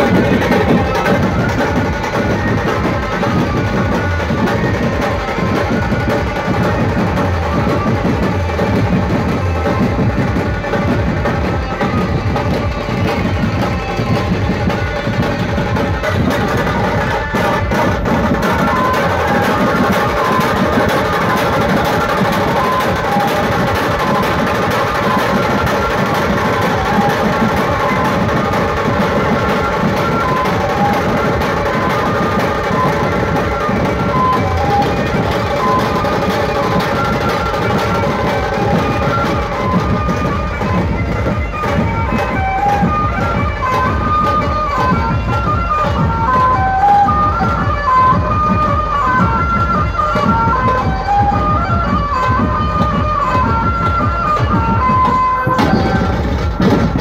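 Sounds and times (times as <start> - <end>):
barrel drums: 0.0 - 57.0
held lead melody: 0.0 - 57.0
loud band music: 0.0 - 57.0
side drum: 0.0 - 57.0.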